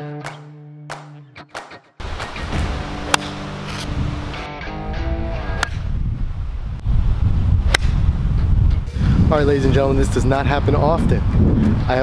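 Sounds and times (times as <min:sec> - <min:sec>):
guitar background music: 0:00.0 - 0:06.2
golf club striking ball: 0:02.0 - 0:04.3, 0:07.7 - 0:08.1
wind rumble on microphone: 0:02.0 - 0:12.0.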